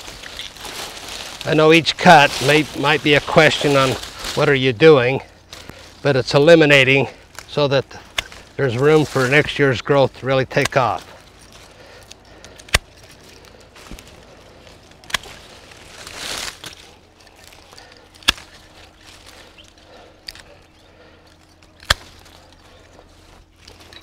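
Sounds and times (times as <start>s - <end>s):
pruning shears snipping: 0.0s - 4.7s, 5.5s - 24.0s
light shear clicks: 10.5s - 13.6s, 16.6s - 23.0s.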